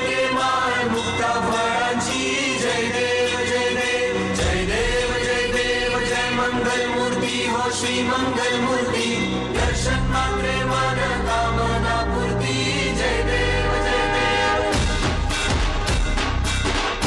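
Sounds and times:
choir chanting held notes: 0:00.0 - 0:15.3
instrumental backing: 0:09.3 - 0:17.0.

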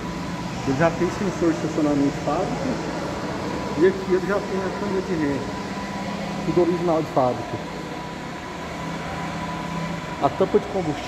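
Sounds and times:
faint steady tones: 0:00.0 - 0:11.0
mechanical background hum: 0:00.0 - 0:11.0.

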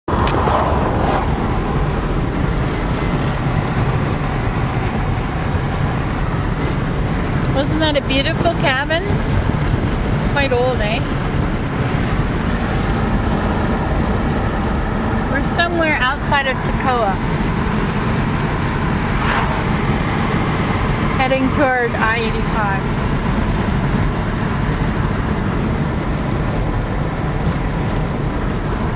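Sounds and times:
road and wind noise in car: 0:00.0 - 0:28.9.

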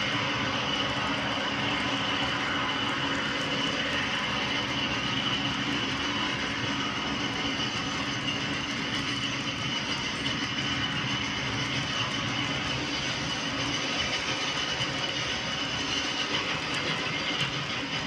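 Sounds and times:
faint steady whine: 0:00.0 - 0:18.0
model train wheels rolling: 0:00.0 - 0:18.0.

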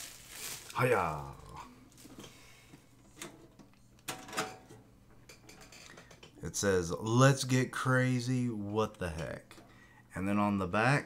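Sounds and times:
person exclaiming: 0:00.8 - 0:01.7.

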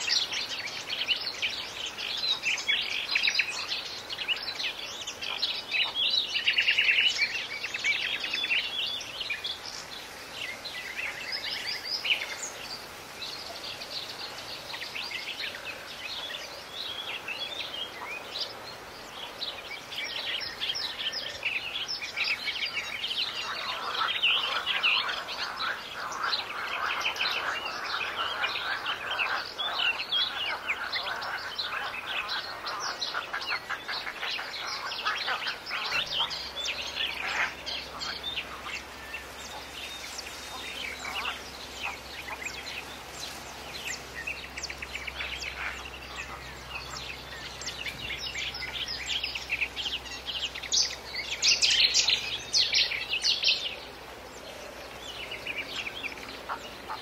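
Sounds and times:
birds chirping: 0:00.0 - 0:57.0.

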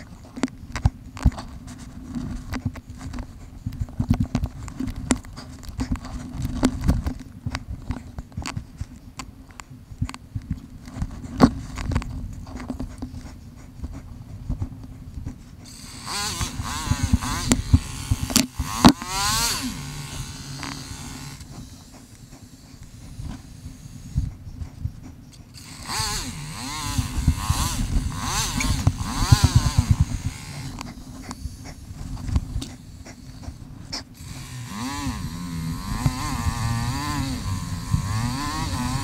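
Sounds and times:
dirt bike engine revving: 0:15.7 - 0:21.5, 0:25.6 - 0:30.8, 0:34.2 - 0:39.0.

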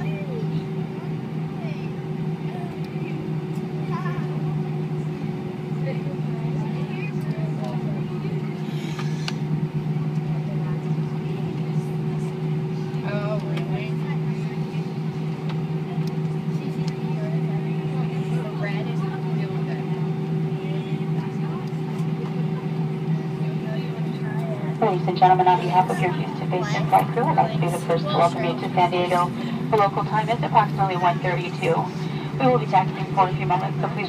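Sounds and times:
airplane cabin drone: 0:00.0 - 0:34.0
faint passenger voices: 0:00.0 - 0:34.0.

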